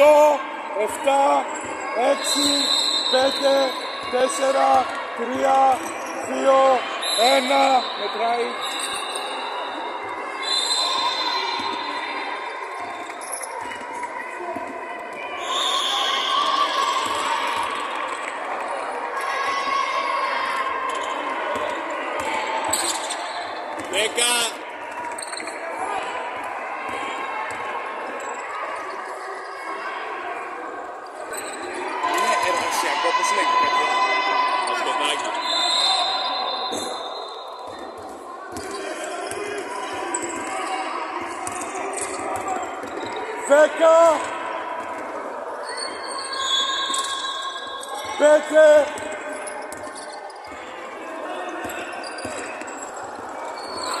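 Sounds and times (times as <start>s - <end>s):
players calling out: 0.0s - 12.0s.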